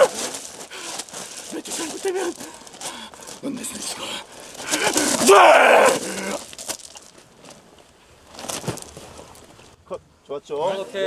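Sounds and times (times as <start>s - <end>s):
scuffling knocks: 0.0s - 7.6s, 8.3s - 9.6s
man yelling: 4.8s - 6.4s.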